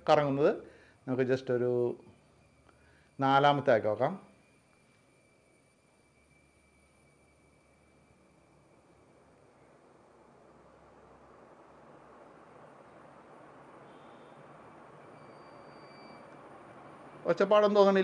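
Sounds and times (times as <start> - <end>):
ceiling fan whooshing: 0.0 - 18.0.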